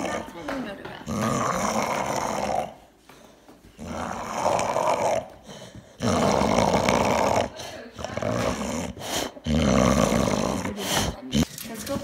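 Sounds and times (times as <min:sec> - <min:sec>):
dog growling: 0:00.0 - 0:03.0, 0:03.7 - 0:12.0.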